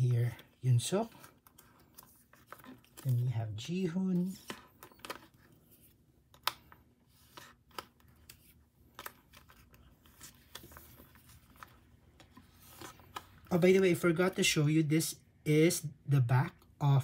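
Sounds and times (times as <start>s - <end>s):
plastic sleeves crinkling: 0.0s - 14.2s.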